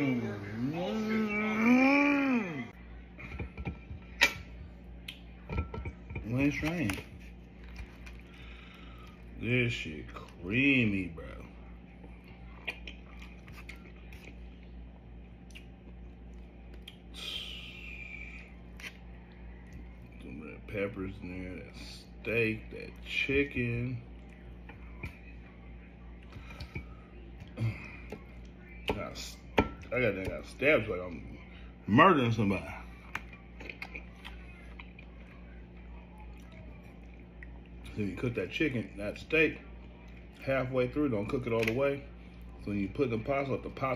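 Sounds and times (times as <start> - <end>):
steady low hum: 0.0 - 43.9
person chewing: 12.2 - 14.6, 15.4 - 17.1, 33.0 - 35.3.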